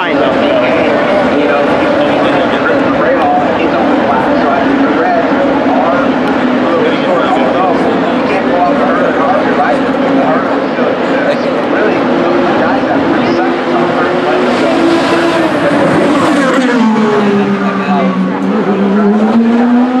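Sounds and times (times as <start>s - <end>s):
race car engines passing: 0.0s - 20.0s.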